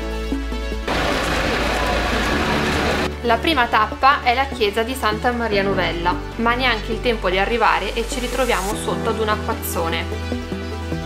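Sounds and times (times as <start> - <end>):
heavy rain on pavement: 0.9 - 3.1.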